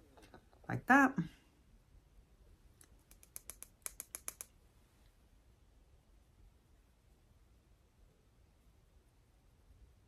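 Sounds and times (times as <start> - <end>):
makeup brush clicking on palette: 2.8 - 4.6.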